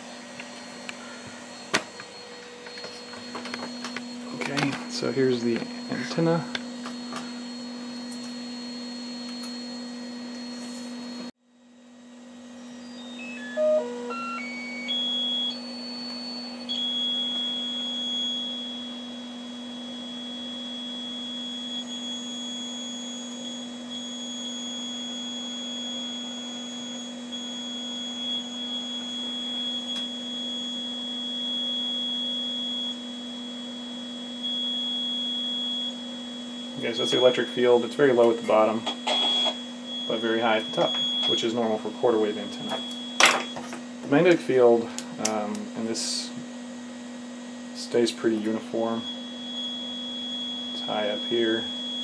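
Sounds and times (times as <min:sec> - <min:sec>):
radio hum: 0:00.9 - 0:07.7
high whistling beat note: 0:12.6 - 0:18.9, 0:36.6 - 0:43.4
tones stepping up in pitch: 0:12.7 - 0:17.5.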